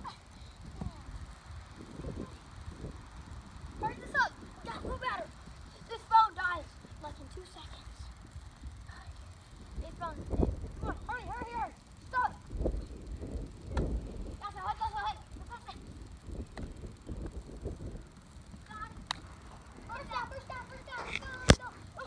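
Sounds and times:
sharp clicks: 15.1s - 22.0s.

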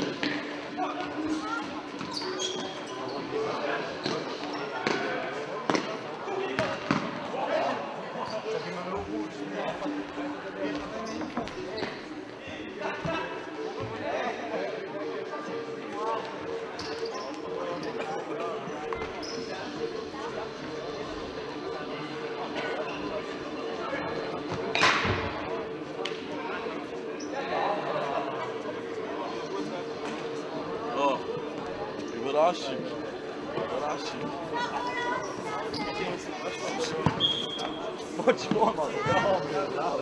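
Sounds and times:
spectators' voices: 0.0s - 40.0s
short squeaks: 2.0s - 3.2s, 37.2s - 37.8s.

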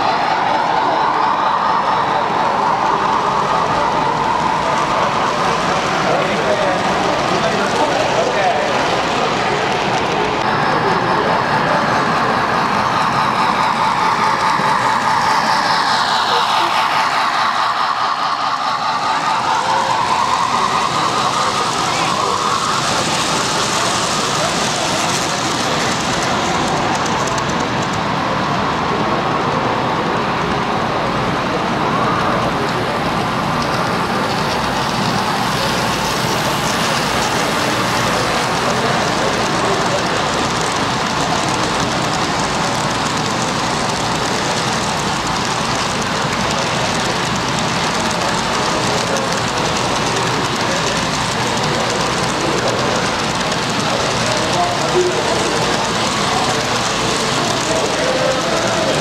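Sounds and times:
many voices in a hall: 0.0s - 59.0s
model trains running: 0.0s - 59.0s.

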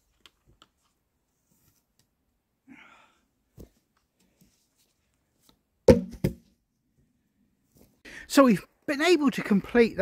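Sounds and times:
wooden knocks of log pole: 5.9s - 6.4s.

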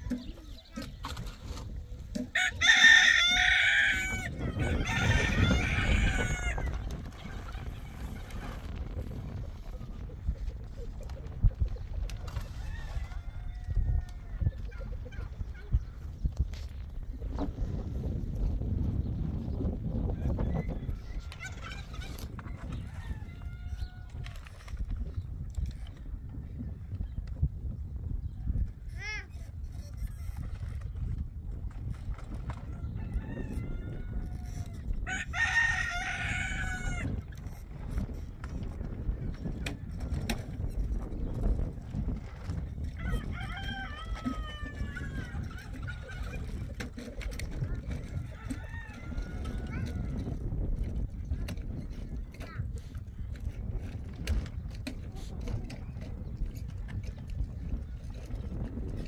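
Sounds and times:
chicken clucking: 0.0s - 16.0s, 20.1s - 24.3s, 43.0s - 50.4s
rooster crowing: 2.3s - 6.7s, 32.9s - 37.1s, 43.0s - 45.3s.

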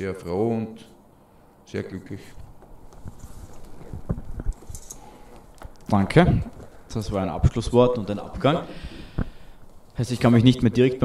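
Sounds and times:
person rising from leather armchair: 2.4s - 7.0s
microphone handling thumps: 2.4s - 10.0s.

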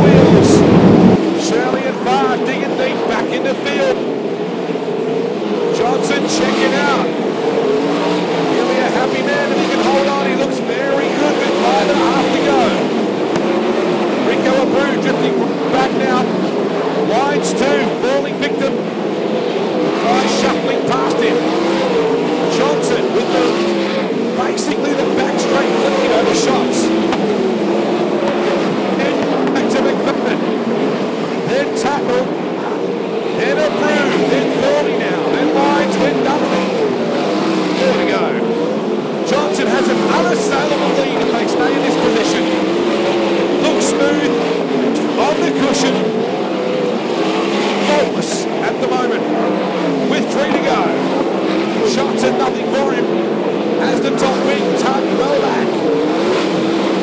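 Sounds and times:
racing car engines: 0.0s - 57.0s.

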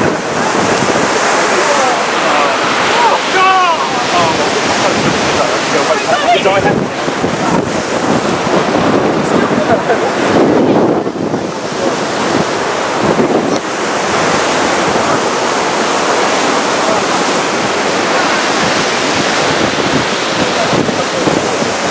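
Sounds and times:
surf breaking on beach: 0.0s - 21.9s
wind buffeting microphone: 0.0s - 21.9s.

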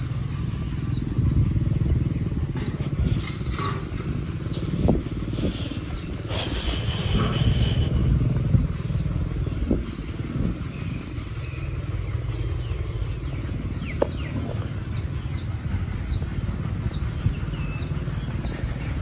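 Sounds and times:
low rumble: 0.0s - 19.0s
bird chirping: 8.8s - 19.0s.

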